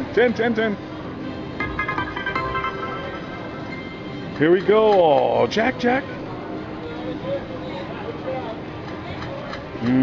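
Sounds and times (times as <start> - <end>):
short bright beeping notes: 1.6 - 4.4
slot machine bonus music: 1.6 - 4.4.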